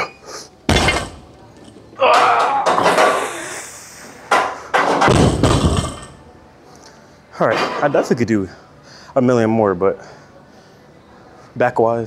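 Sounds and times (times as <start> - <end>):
barbell thudding on rubber floor: 0.7 - 1.4, 5.0 - 6.2.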